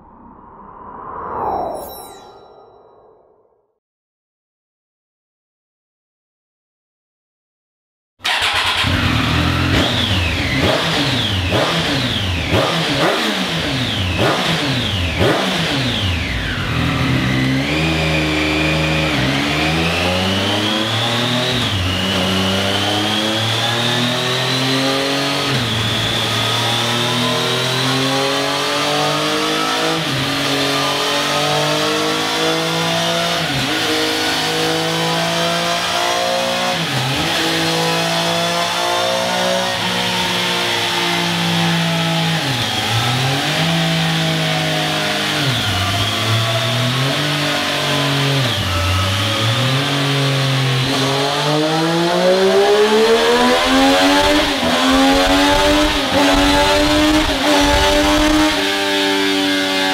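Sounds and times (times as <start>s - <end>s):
engine revving through gears: 8.2s - 59.9s.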